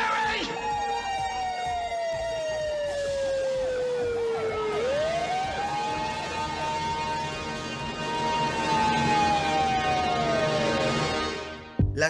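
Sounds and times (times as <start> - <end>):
fast rising and falling siren: 0.0 - 11.5
siren wailing: 0.0 - 11.6
steady music tones: 0.0 - 12.0.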